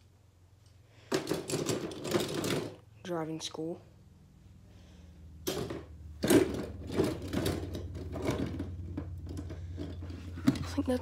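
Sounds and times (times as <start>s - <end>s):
toy trucks clicking and rattling: 0.6s - 2.9s, 5.4s - 11.0s.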